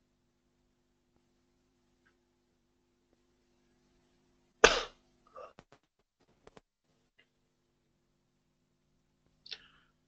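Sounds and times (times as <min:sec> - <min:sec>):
faint steady hum: 0:00.0 - 0:10.0
person coughing: 0:04.6 - 0:05.6.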